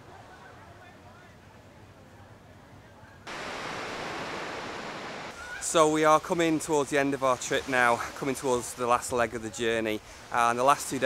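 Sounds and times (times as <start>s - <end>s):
faint outdoor ambience: 0.0s - 11.0s
surf breaking on sandy beach: 3.3s - 9.0s.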